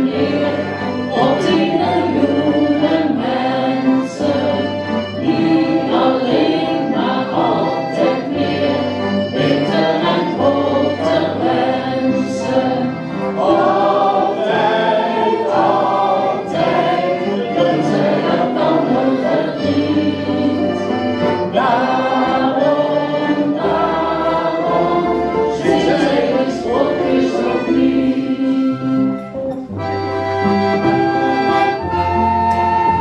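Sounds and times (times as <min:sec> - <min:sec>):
group singing: 0:00.0 - 0:29.2
accordion band playing: 0:00.0 - 0:33.0
flute: 0:00.0 - 0:33.0.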